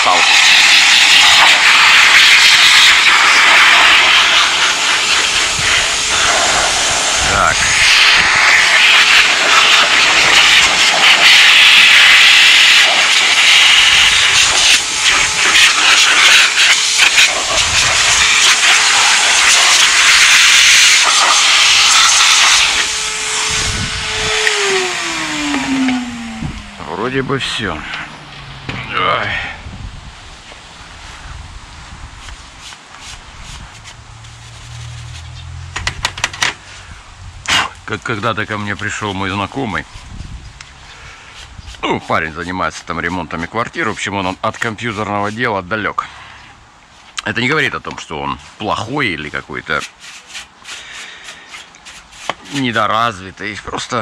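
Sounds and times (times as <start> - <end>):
vacuum cleaner blowing air: 0.0 - 31.3, 32.0 - 36.0, 36.6 - 45.4
motor whine spinning down: 19.8 - 30.6.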